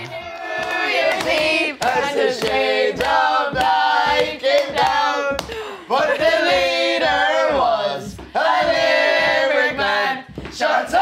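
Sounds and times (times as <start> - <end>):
group singing long held notes: 0.0 - 11.0.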